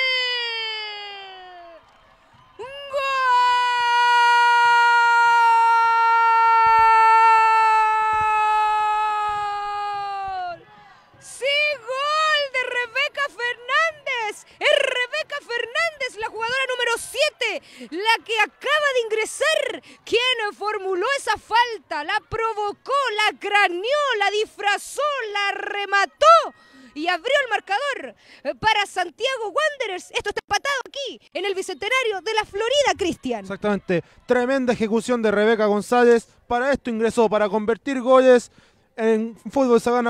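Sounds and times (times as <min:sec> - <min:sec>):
woman commentator shouting: 0:00.0 - 0:01.8, 0:02.6 - 0:10.6, 0:11.2 - 0:34.8.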